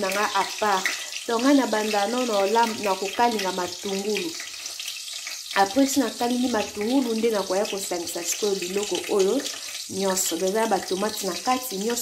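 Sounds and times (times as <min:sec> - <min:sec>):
woman talking: 0:00.0 - 0:04.4, 0:05.6 - 0:12.0
oil sizzling in a pan: 0:00.0 - 0:12.0.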